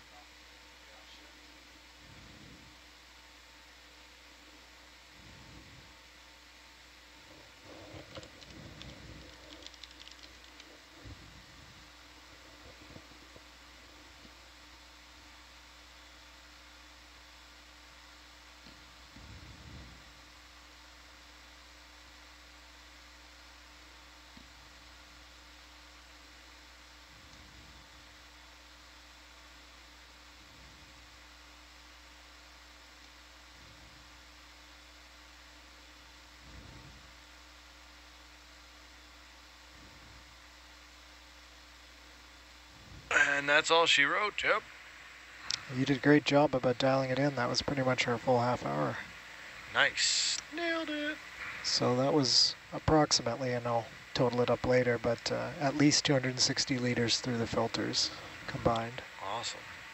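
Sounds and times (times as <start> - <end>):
faint line hiss and hum: 0.0 - 59.9.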